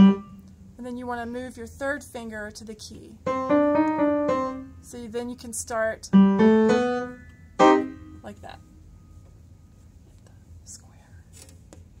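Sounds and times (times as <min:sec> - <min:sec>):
low steady hum: 0:00.0 - 0:12.0
soft hissy breaths: 0:09.0 - 0:11.4
faint whispering: 0:10.1 - 0:11.3.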